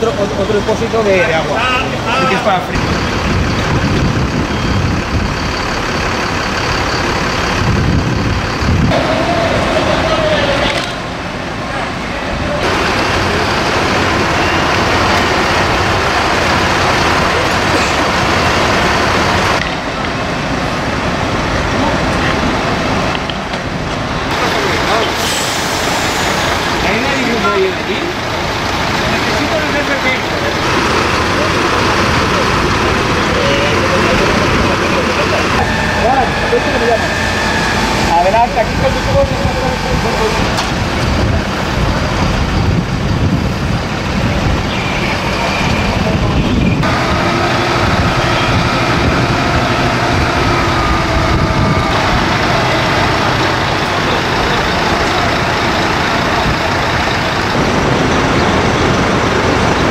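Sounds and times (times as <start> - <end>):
distant voices: 0.0 - 59.9
fire engine running: 0.0 - 59.9.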